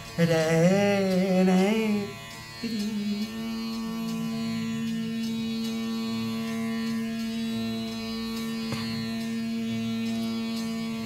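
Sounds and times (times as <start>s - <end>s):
drone: 0.0s - 11.0s
veena held note: 0.0s - 11.0s.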